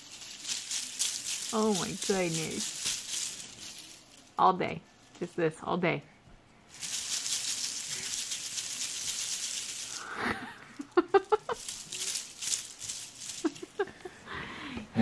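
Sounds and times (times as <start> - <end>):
plastic ribbon bow rustling: 0.0 - 5.2, 6.7 - 14.1
soft laughter: 10.0 - 11.6, 13.4 - 14.6.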